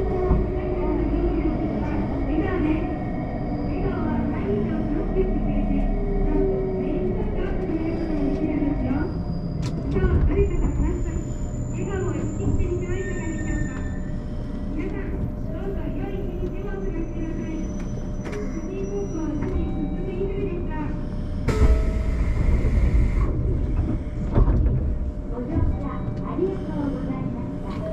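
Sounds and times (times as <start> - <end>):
electric train running rumble: 0.0 - 27.9.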